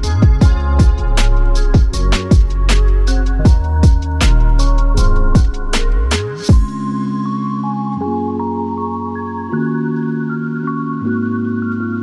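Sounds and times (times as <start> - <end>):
soft electronic music: 0.0 - 12.0.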